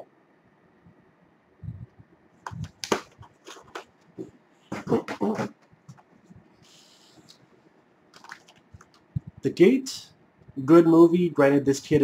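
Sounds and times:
plastic cases clacking and rattling: 2.4s - 3.9s.

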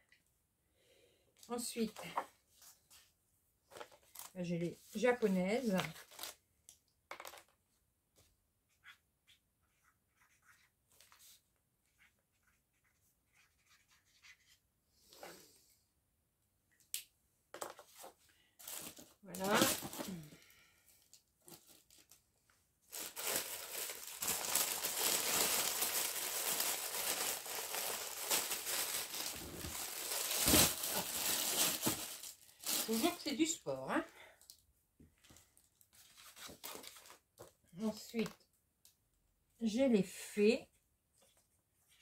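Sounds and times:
plastic packaging crinkling: 18.6s - 20.3s, 22.9s - 33.2s.

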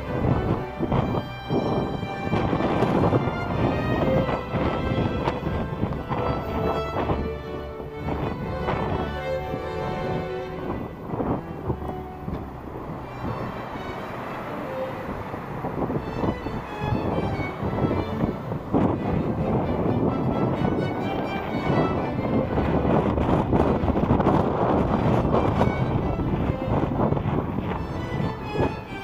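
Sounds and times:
breaking surf: 0.0s - 29.0s
wind on microphone: 0.0s - 29.0s.

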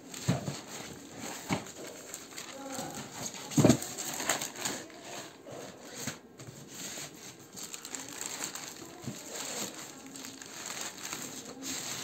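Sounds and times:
plastic mailer rustling: 0.0s - 12.0s.

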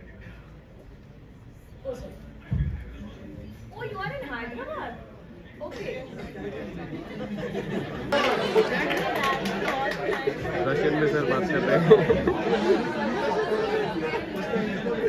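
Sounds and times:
students chattering: 1.8s - 15.0s.

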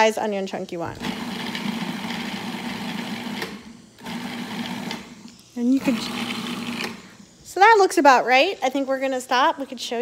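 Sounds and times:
food processor motor humming: 0.9s - 7.4s.

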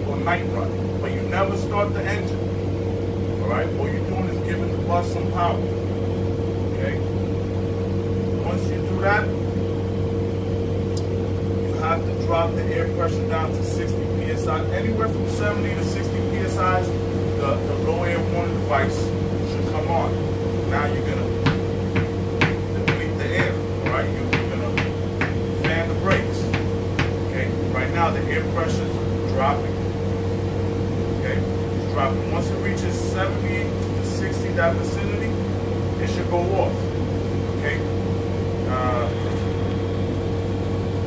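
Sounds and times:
man talking: 0.0s - 2.4s, 3.4s - 5.7s, 6.7s - 7.1s, 8.4s - 9.4s, 11.6s - 29.9s, 31.2s - 35.4s, 36.0s - 36.9s, 37.5s - 37.9s, 38.6s - 39.4s
machine hum: 0.0s - 41.0s.

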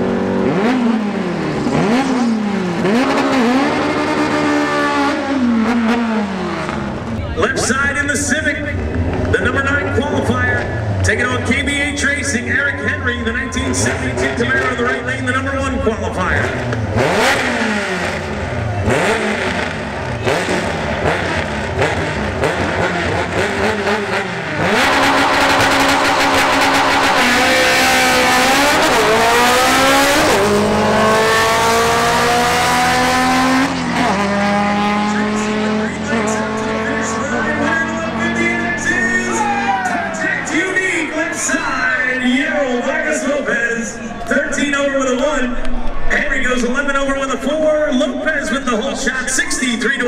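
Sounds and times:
drag car engines revving: 0.0s - 50.0s.

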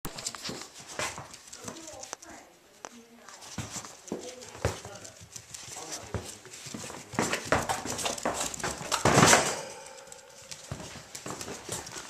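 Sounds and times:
puppy paws pattering on floor: 0.1s - 12.0s.

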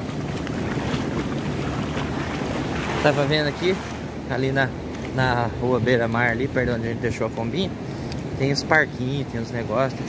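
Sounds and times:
ocean surf washing in: 0.0s - 10.0s
wind buffeting microphone: 0.0s - 10.0s.

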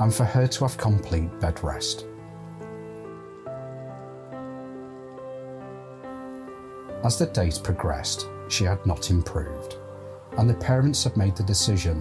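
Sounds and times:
soft sustained chord music: 0.0s - 12.0s.

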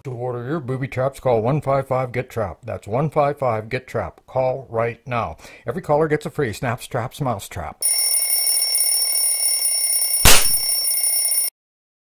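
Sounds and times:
electronic alarm high-pitched tone: 7.8s - 11.5s
sharp snap: 10.3s - 10.6s.

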